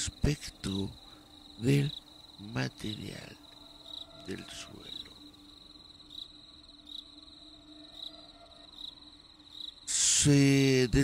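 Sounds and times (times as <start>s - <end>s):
high-pitched insect trill: 0.0s - 11.0s.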